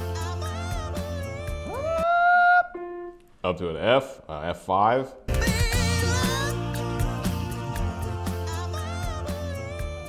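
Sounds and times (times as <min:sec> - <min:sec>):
a cappella singing: 0:00.0 - 0:02.0, 0:05.3 - 0:10.0.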